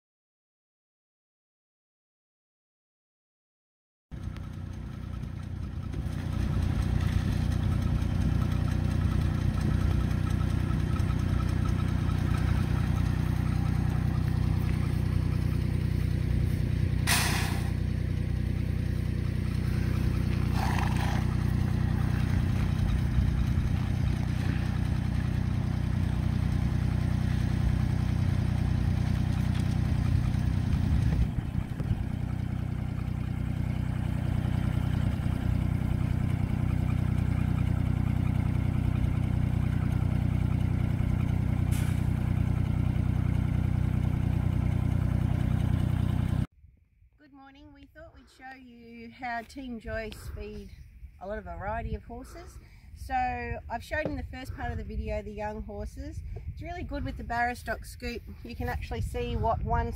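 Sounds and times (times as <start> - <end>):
tractor engine idling: 4.2 - 46.5
hissy scraping sounds: 16.4 - 17.9.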